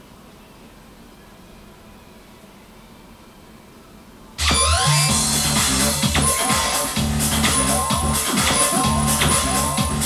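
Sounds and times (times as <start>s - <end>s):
high beeping tones: 4.4s - 10.0s
upbeat jingle: 4.4s - 10.0s.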